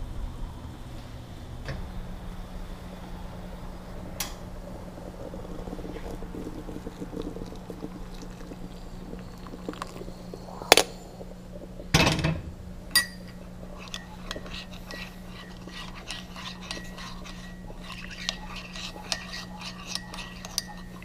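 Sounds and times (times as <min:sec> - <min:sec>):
coffee pouring into a bowl: 0:03.0 - 0:12.0, 0:12.7 - 0:21.0.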